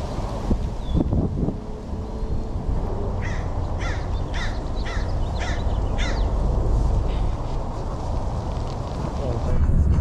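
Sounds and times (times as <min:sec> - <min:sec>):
bird harsh calls: 0:03.2 - 0:06.5.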